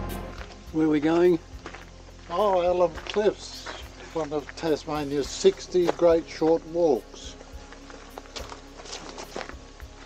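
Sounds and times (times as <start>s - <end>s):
footsteps on forest ground: 0.0s - 10.0s
quiet background music: 0.0s - 10.0s.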